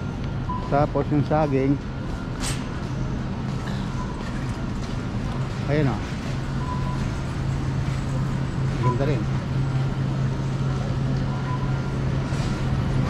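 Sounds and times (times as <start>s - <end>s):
steady low hum: 0.0s - 13.0s
short faint beeps: 6.5s - 7.1s.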